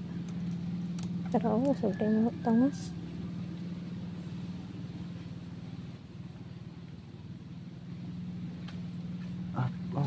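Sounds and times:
distant engine humming: 0:00.0 - 0:10.0.

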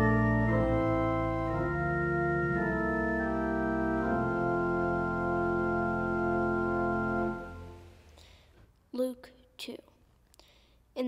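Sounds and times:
soft breath: 0:08.0 - 0:08.7, 0:10.3 - 0:10.9.

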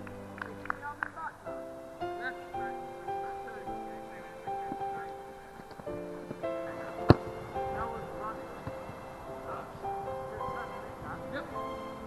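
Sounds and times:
held musical notes: 0:00.0 - 0:12.0
voices: 0:00.0 - 0:12.0
football kicked thud: 0:07.0 - 0:07.3.

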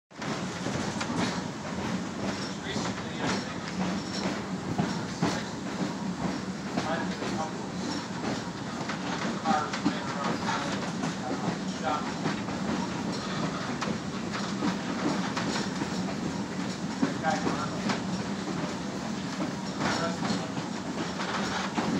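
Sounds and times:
train wheels rumbling on rail: 0:00.1 - 0:21.9.

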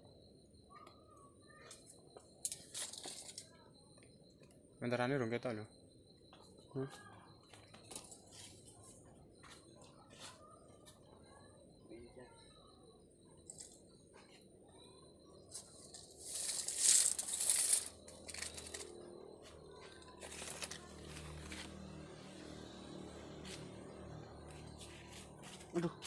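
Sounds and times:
leaves rustling against phone: 0:15.5 - 0:19.1, 0:19.9 - 0:21.8.

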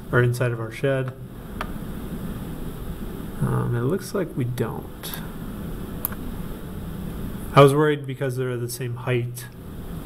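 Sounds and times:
sharp click: 0:06.0 - 0:06.2.

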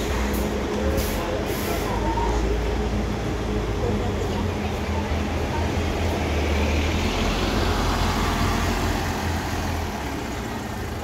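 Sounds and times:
bus engine droning: 0:00.0 - 0:11.0.

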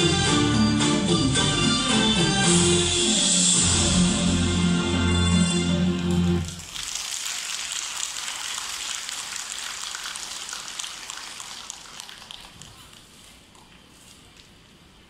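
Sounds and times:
audience applauding: 0:05.7 - 0:12.7.

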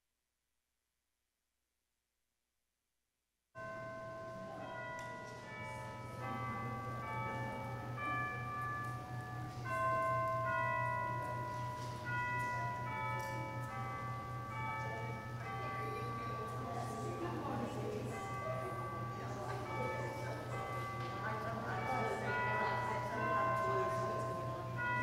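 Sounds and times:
chimes playing a slow tune: 0:03.6 - 0:21.2.

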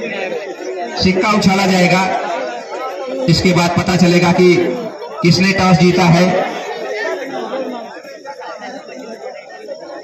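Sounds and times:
crowd chattering: 0:00.0 - 0:10.0
man speaking: 0:00.9 - 0:02.3, 0:03.2 - 0:06.6.

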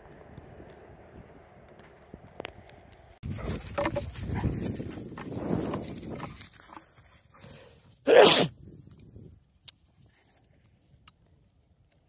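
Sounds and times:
dogs scuffling: 0:03.2 - 0:07.6.

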